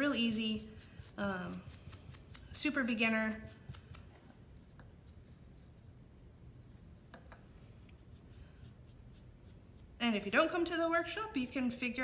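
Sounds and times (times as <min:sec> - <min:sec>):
paintbrush scratching on wood: 0:00.0 - 0:06.0, 0:06.6 - 0:11.7.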